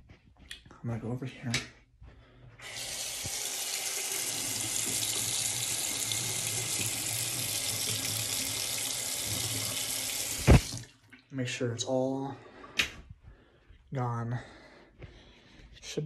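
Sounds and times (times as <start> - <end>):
sink faucet water running: 2.6 - 10.9.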